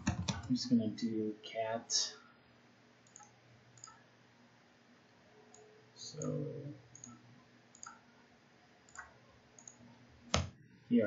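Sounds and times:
mouse and keyboard clicks: 3.1 - 4.0, 7.8 - 8.0.

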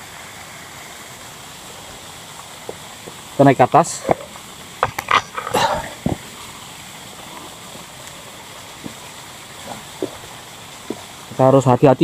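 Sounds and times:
small waterfall rushing: 0.0 - 12.0.

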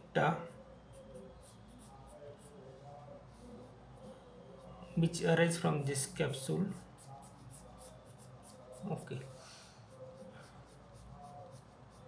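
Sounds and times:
pencil scratching on paper: 0.5 - 5.2, 6.2 - 12.0.

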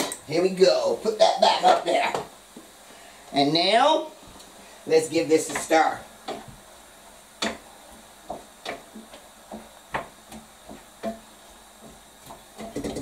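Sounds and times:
utensil knocking against a pot: 12.6 - 13.0.

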